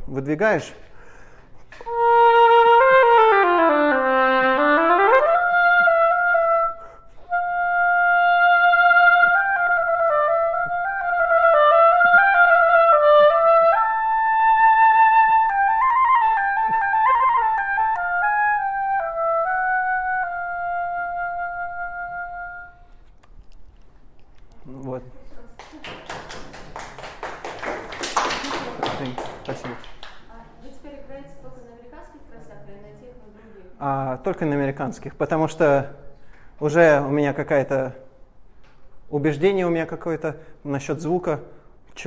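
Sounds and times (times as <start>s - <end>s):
solo oboe: 1.7s - 23.0s.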